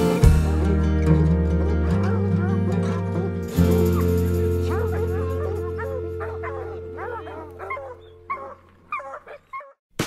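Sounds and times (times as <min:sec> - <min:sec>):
background music: 0:00.0 - 0:09.1
hound giving high calls: 0:04.7 - 0:09.8.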